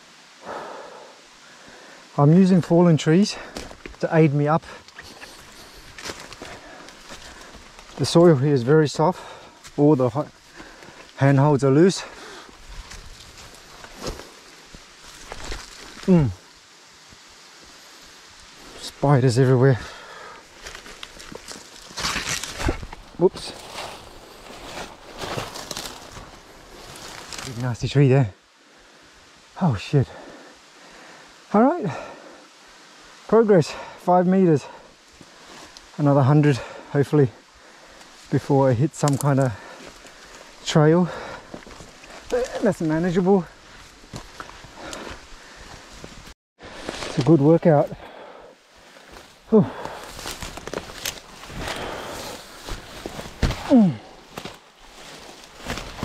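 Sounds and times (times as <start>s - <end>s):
ferns rustling and brushing: 1.7s - 28.4s, 33.8s - 56.0s
scuffing in leaf litter: 20.6s - 27.6s, 49.0s - 56.0s.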